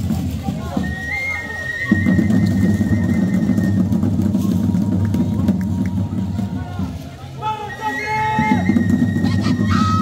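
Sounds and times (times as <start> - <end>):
drum-led band music: 0.0 - 10.0.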